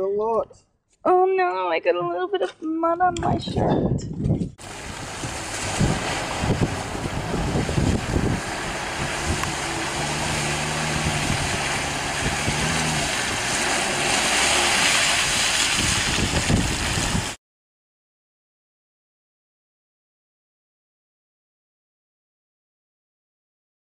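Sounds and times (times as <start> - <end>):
wind buffeting microphone: 3.0 - 17.4
vehicle engine running: 4.6 - 17.3
water splashing around tyres: 4.6 - 17.4.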